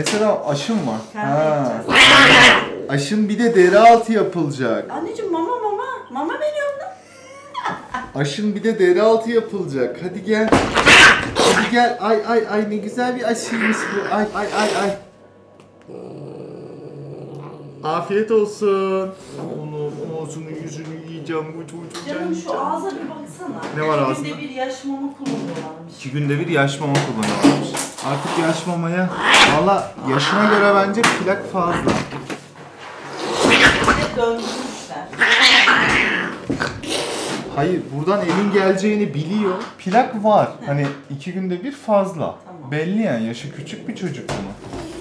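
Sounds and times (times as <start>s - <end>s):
cat growling: 1.3s - 3.2s, 10.6s - 12.0s, 13.3s - 15.0s, 15.8s - 18.2s, 28.2s - 32.1s, 33.1s - 37.6s.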